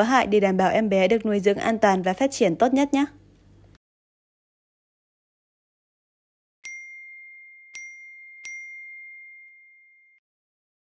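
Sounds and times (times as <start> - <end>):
bell-like ding chime: 6.6 - 10.2.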